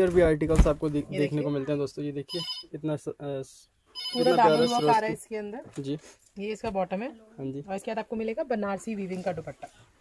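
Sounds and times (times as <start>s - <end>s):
high electronic tone: 4.0s - 5.2s
person talking: 4.2s - 5.2s.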